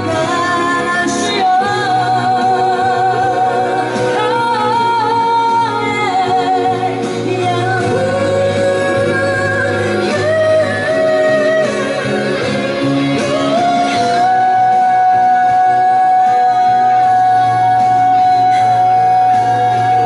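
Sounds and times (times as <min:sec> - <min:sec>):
instrumental accompaniment: 0:00.0 - 0:20.0
woman singing into microphone: 0:00.0 - 0:20.0.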